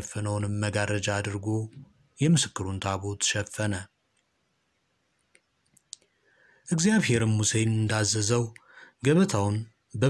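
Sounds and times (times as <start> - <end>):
person reading aloud: 0.0 - 3.9, 6.7 - 10.0
faint mouth clicks: 5.3 - 6.1
soft intake of breath: 6.0 - 6.7, 8.6 - 9.0.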